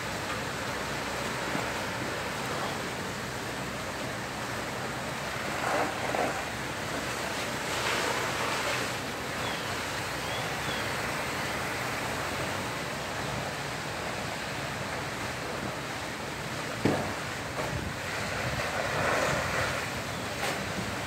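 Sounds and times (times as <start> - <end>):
house fire rushing: 0.0 - 21.0
sharp fire crack: 5.2 - 9.8, 16.7 - 21.0.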